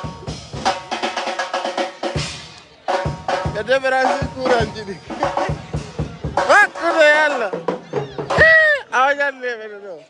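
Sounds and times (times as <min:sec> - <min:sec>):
high-pitched human cries: 0:07.9 - 0:09.0.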